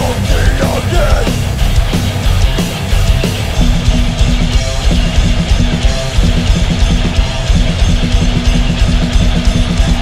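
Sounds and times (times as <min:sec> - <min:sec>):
bass guitar: 0:00.0 - 0:10.0
distorted electric guitar riff: 0:00.0 - 0:10.0
fast drum-kit beat: 0:00.0 - 0:10.0.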